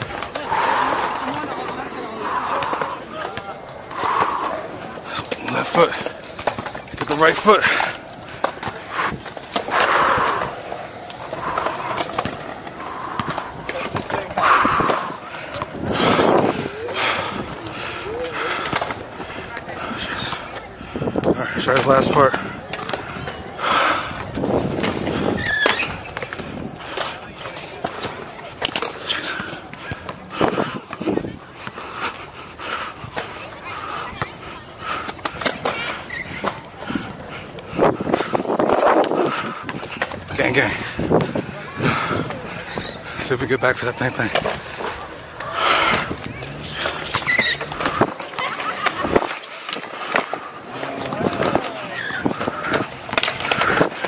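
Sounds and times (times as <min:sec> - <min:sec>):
skate wheels rolling on concrete: 0:00.0 - 0:54.0
short squeaks: 0:25.3 - 0:26.3, 0:46.3 - 0:52.4.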